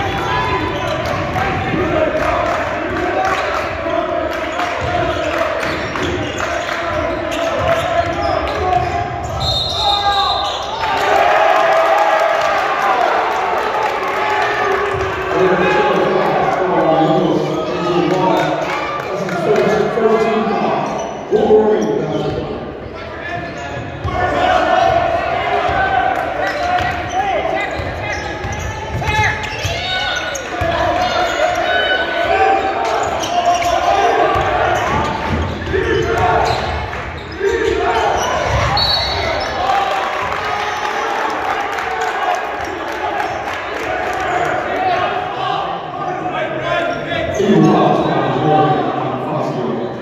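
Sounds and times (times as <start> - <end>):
people shouting and talking: 0.0 - 50.0.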